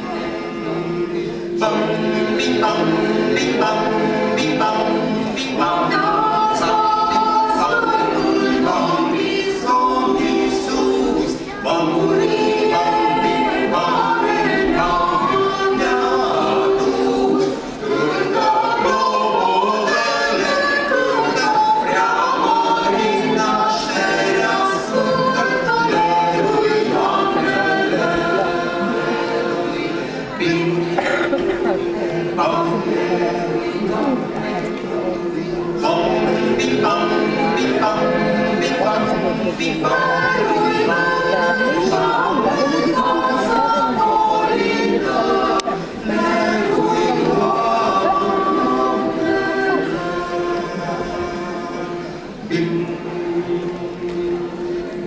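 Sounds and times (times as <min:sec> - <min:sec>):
mixed choir singing a cappella: 0:00.0 - 0:55.0.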